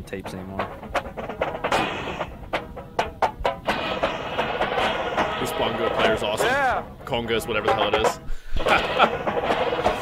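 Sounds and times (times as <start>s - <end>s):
drum corps percussion: 0.0s - 10.0s
man laughing: 8.6s - 9.4s.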